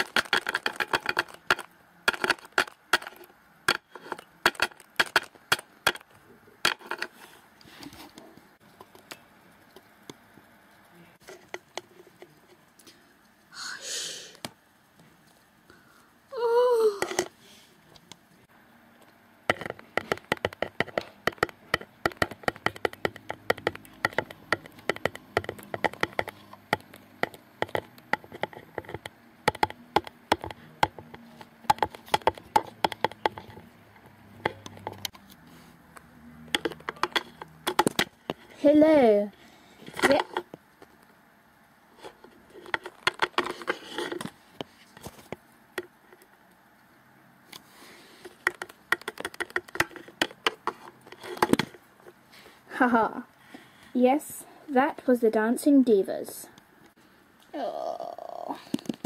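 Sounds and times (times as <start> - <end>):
plastic toys clicking on wood: 0.0 - 7.1, 19.5 - 35.1, 36.5 - 38.5, 42.6 - 44.3, 48.2 - 51.8
breathy hiss: 12.9 - 14.4
high-pitched vocal squeal: 13.5 - 14.4, 16.3 - 17.1, 57.5 - 58.7.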